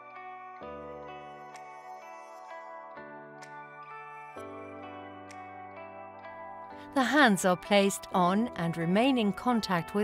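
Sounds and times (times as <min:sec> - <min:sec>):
soft new-age music: 0:00.0 - 0:10.0.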